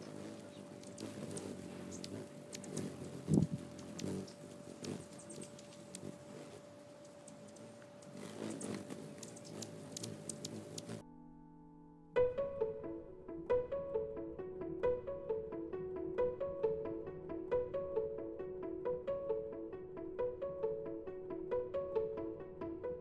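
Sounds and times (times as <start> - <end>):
hummingbird chips: 0.0 - 11.0
hummingbird wing hum: 0.0 - 11.0
thin electrical hum: 0.0 - 11.0
string music: 0.0 - 23.0.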